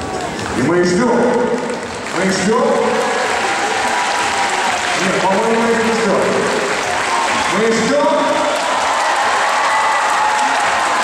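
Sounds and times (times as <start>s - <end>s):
audience applause: 0.0s - 11.0s.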